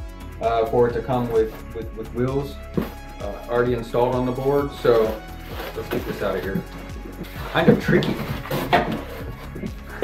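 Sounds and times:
background music: 0:00.0 - 0:10.0
clunks and rattles in cardboard box: 0:05.9 - 0:09.8.

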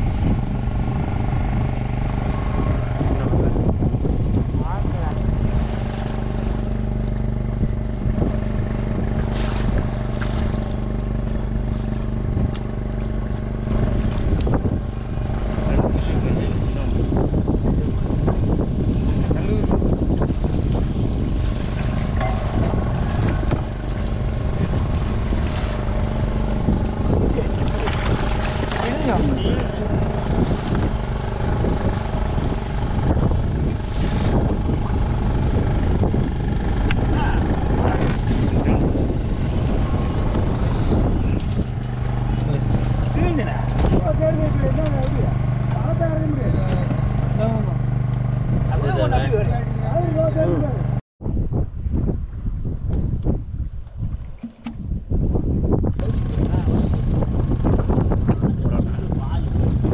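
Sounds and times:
boat motor running: 0:00.0 - 0:51.0, 0:51.8 - 0:59.9
voices: 0:01.8 - 0:06.7, 0:15.2 - 0:18.1, 0:26.7 - 0:32.9, 0:37.0 - 0:39.0, 0:40.3 - 0:51.0.

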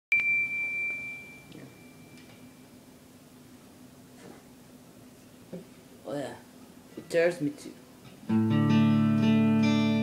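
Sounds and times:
high-pitched ding: 0:00.1 - 0:02.6.

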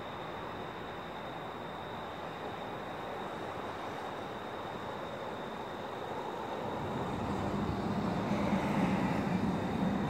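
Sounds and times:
vehicle rumbling: 0:06.4 - 0:10.0.

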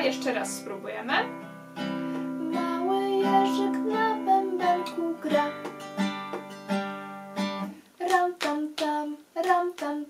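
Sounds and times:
acoustic guitar strumming: 0:00.0 - 0:07.8.

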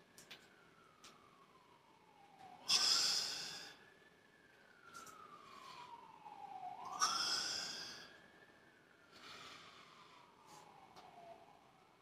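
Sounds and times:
faint wailing siren: 0:00.0 - 0:12.0
man exhaling hard: 0:02.7 - 0:03.7, 0:06.9 - 0:08.1.

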